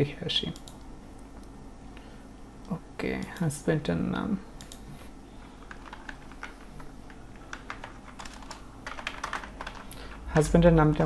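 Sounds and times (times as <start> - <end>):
computer keyboard typing: 4.6 - 4.8, 5.4 - 11.0.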